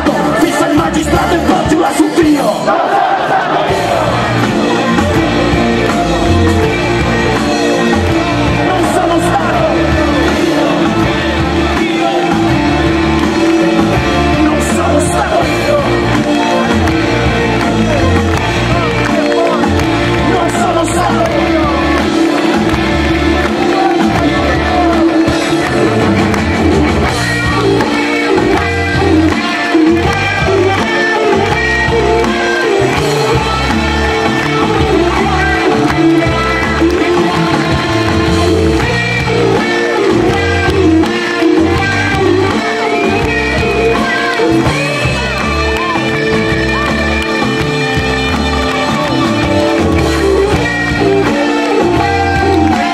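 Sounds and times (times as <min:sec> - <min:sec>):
live rock band playing: 0:00.0 - 0:52.9
steady drum beat: 0:00.0 - 0:52.9
electric guitar: 0:03.3 - 0:52.9
bass notes: 0:03.6 - 0:52.9.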